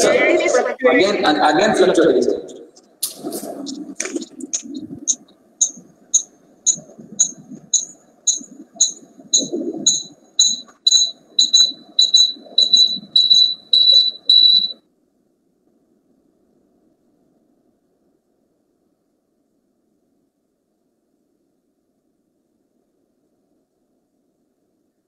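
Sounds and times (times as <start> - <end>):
short high-pitched beeps: 5.1 - 14.8.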